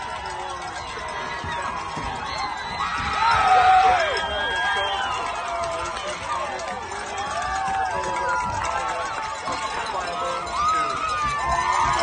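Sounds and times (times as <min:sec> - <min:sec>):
spectators shouting and cheering: 0:00.0 - 0:12.0.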